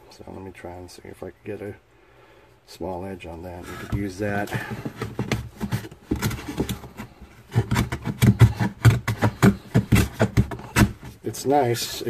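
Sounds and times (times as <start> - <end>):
hand plane shaving wood: 3.5 - 11.2.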